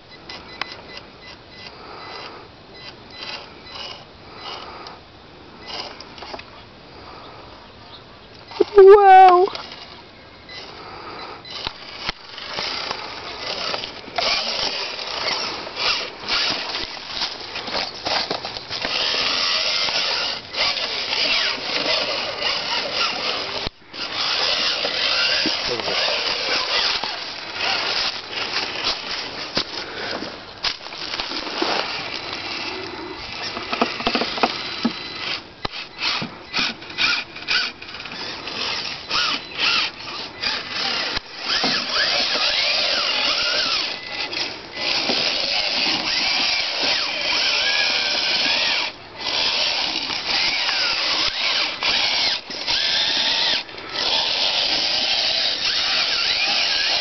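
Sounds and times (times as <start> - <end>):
brief wordless voice: 8.6 - 9.5
electric motor whirring: 11.4 - 29.6, 31.1 - 57.0.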